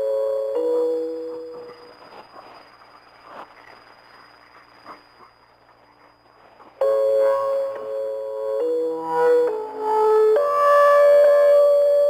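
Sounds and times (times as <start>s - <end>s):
shortwave radio hiss: 0.0s - 12.0s
electronic keyboard chords: 6.8s - 12.0s.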